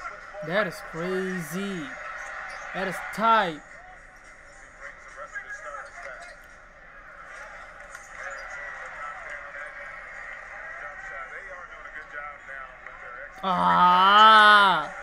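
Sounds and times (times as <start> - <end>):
arena crowd noise: 0.0 - 15.0
commentator's voice: 0.4 - 2.0, 2.8 - 3.6, 13.4 - 15.0.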